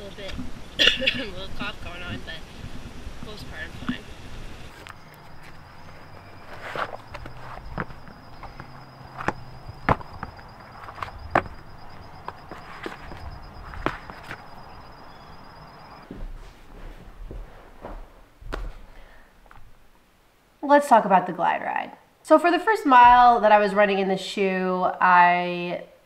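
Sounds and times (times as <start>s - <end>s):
footsteps on brick paving: 4.7s - 15.4s, 16.0s - 19.7s
shoes being unlaced and pulled off: 4.8s - 14.5s.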